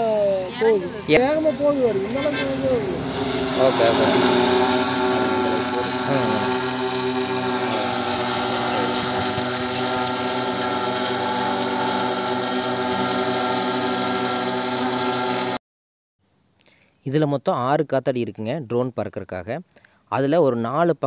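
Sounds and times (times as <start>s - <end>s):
drone propellers buzzing: 0.0s - 15.6s.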